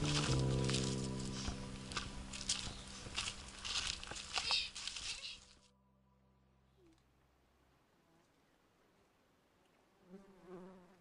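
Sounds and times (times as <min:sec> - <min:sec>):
flying insect wingbeat buzz: 0:10.0 - 0:11.0.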